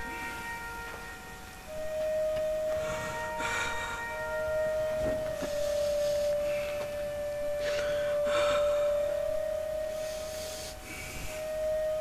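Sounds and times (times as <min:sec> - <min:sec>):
faint high hiss: 0:00.0 - 0:12.0
held musical tone: 0:00.0 - 0:12.0.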